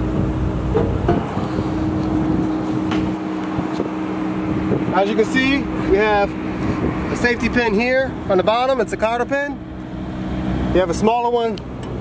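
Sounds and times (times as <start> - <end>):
engine humming: 0.0 - 12.0.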